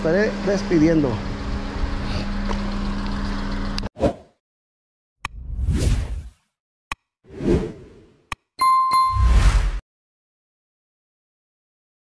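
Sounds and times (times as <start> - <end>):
bright ding: 8.6 - 9.3.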